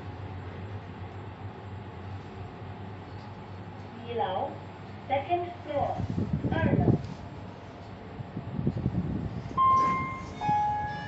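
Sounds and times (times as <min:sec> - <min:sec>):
lift arrival chime: 0:09.6 - 0:11.0.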